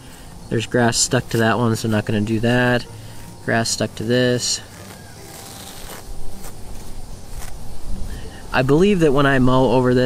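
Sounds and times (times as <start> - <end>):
straw blanket rustling: 0.0 - 9.1.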